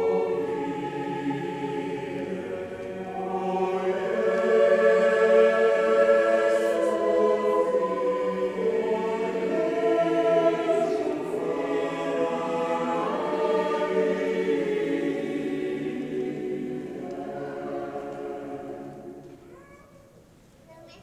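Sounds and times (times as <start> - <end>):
choir singing sustained chords: 0.0 - 19.4.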